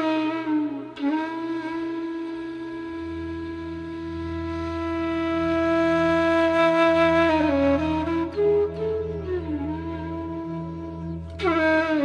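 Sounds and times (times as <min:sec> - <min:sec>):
flute holding long note: 0:00.0 - 0:12.0
low sustained accompaniment: 0:00.0 - 0:12.0.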